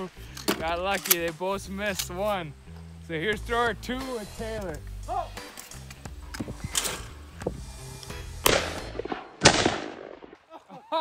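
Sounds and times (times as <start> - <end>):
shotgun shots: 8.4 - 10.4.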